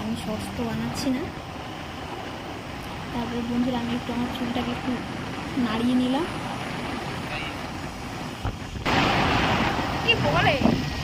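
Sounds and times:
road noise from motorbike: 0:00.0 - 0:08.9
wind rushing over microphone: 0:00.0 - 0:11.0.

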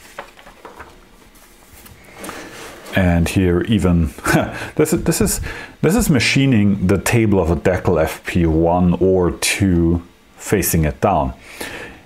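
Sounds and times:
paper page rustling: 0:00.0 - 0:03.3.

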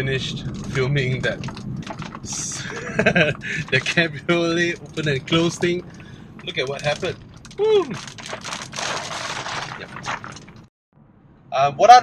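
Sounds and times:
rain on car windscreen: 0:00.0 - 0:10.7.

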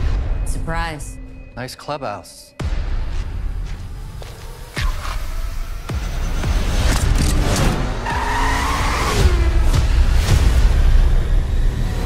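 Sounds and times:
car tyres squealing: 0:08.0 - 0:09.5.

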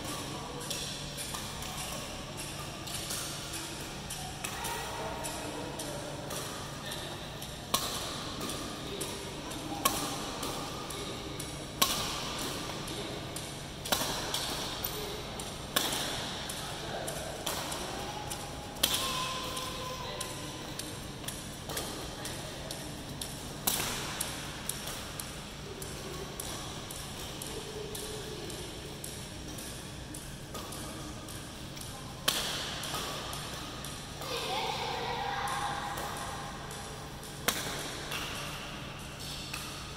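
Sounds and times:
racket hitting shuttlecock: 0:07.4 - 0:27.4, 0:32.2 - 0:34.4, 0:37.4 - 0:39.8.

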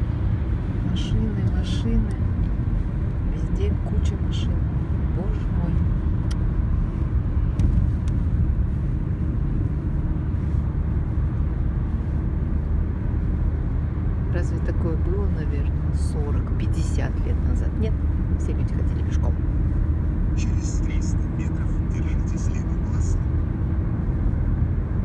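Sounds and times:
car road and engine rumble: 0:00.0 - 0:25.0.

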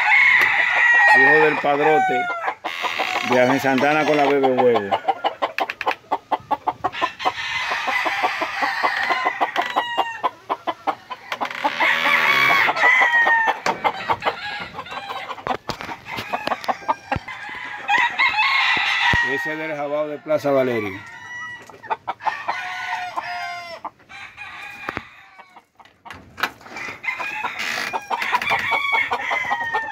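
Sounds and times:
roosters crowing and clucking: 0:00.0 - 0:29.9.

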